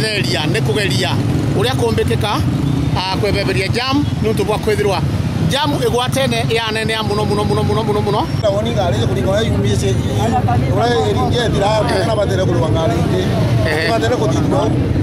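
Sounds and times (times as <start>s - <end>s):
people talking: 0.0s - 15.0s
traffic engines rumbling: 0.0s - 15.0s.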